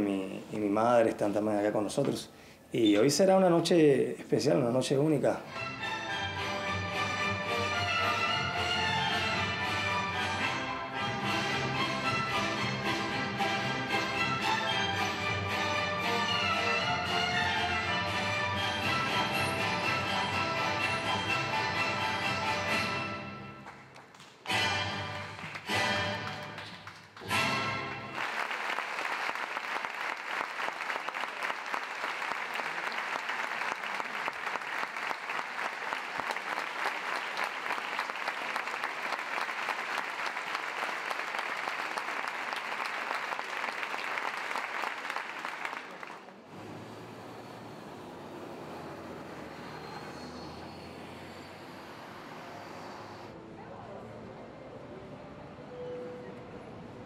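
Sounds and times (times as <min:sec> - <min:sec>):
orchestral music: 0:05.5 - 0:23.7, 0:24.5 - 0:28.2
audience applauding: 0:23.6 - 0:46.8.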